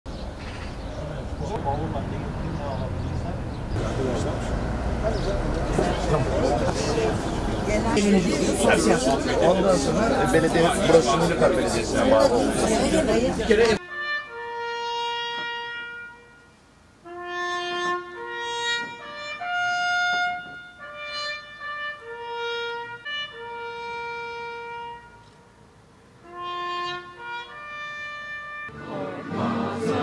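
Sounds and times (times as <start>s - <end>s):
solo trumpet melody: 13.8s - 25.6s, 26.2s - 30.0s.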